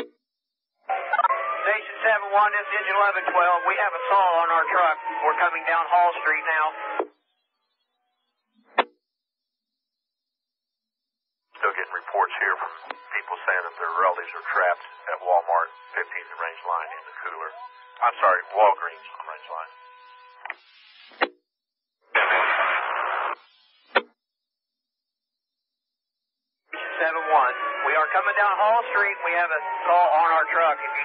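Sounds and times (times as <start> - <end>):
voice over radio: 0.9 - 7.0, 11.6 - 19.8, 26.7 - 31.0
radio static: 1.6 - 7.0, 11.6 - 21.2, 22.1 - 24.0, 26.7 - 31.0.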